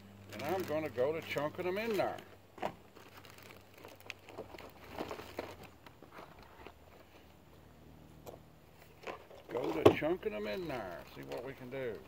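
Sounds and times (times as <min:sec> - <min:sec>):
faint rustling and shuffling: 0:00.2 - 0:12.0.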